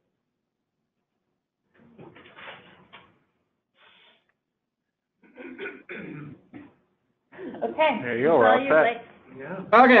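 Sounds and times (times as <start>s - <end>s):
person clearing throat: 5.2s - 6.8s.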